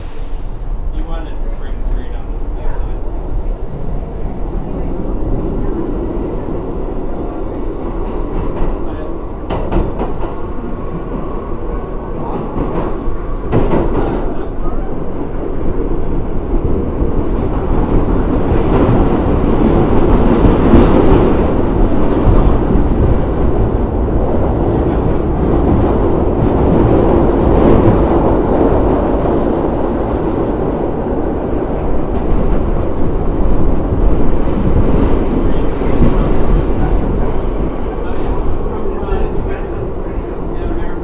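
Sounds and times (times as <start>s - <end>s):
subway car rumble and rattle: 0.0s - 41.0s.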